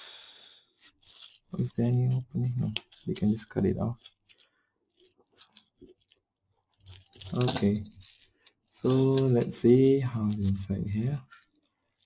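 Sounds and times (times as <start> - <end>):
utility knife cutting plastic: 2.6 - 9.6.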